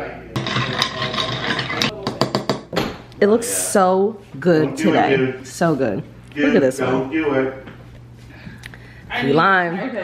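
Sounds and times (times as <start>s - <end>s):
spoon stirring iced coffee in glass: 0.4s - 1.9s.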